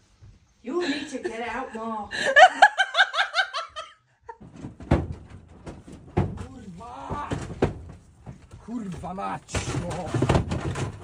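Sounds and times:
sharp knocks and thuds: 4.4 - 11.0.

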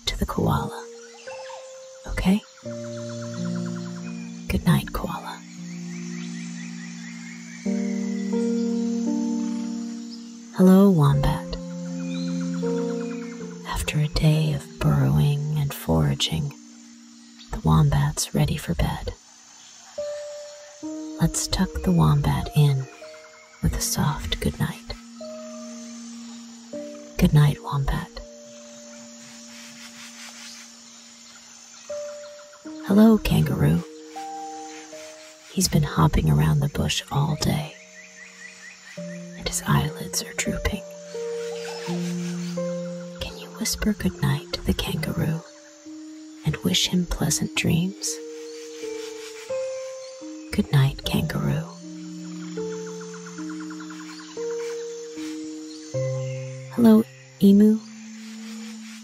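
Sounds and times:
sustained pure music notes: 0.0 - 59.0.

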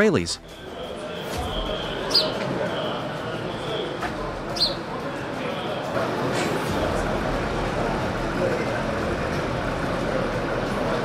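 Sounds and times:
road traffic engine rumble: 6.0 - 11.0.

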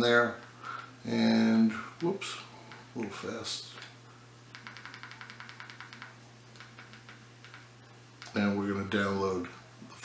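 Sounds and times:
low steady hum: 0.0 - 10.0
remote control clicks: 4.5 - 8.4.

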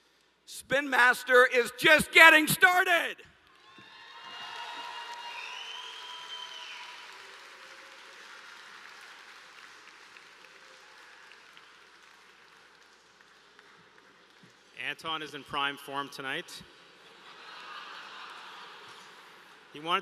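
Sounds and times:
high rising and falling cheer: 1.5 - 8.2
audience applauding: 3.5 - 14.6, 17.4 - 19.5.

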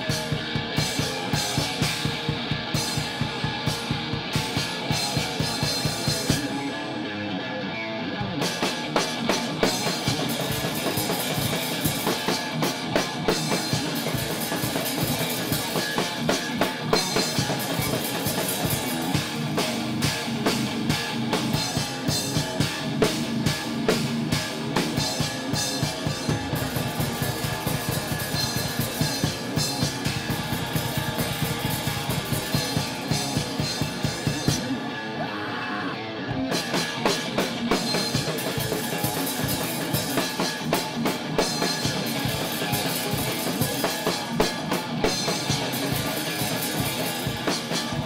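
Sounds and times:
electric guitar: 0.0 - 48.0
rock drumming: 0.0 - 48.0.

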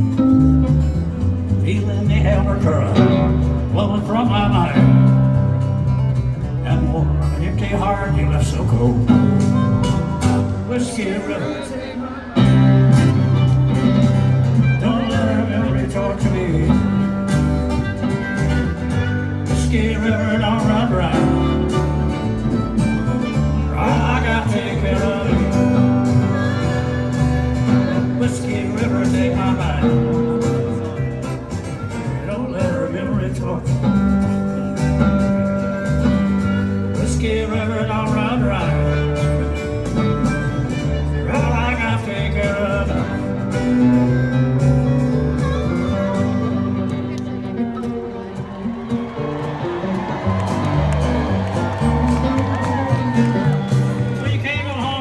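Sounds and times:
acoustic guitars: 0.0 - 55.0
lead melody line: 0.0 - 55.0
live country band playing: 0.0 - 55.0
upright bass: 0.0 - 55.0.

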